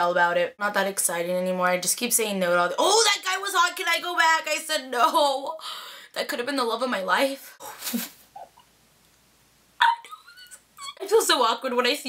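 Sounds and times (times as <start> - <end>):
woman whimpering squeal: 9.8 - 11.0.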